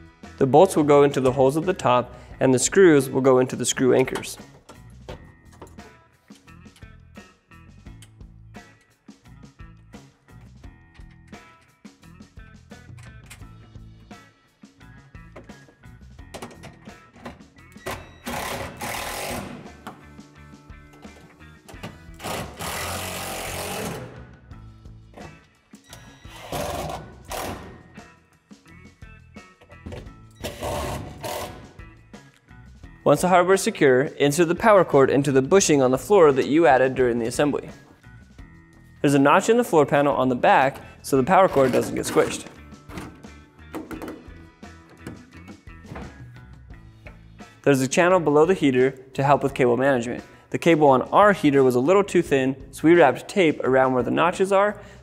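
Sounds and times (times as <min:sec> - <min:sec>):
background music: 0:00.0 - 0:55.0
cordless driver driving screws: 0:26.0 - 0:27.8, 0:30.4 - 0:31.6.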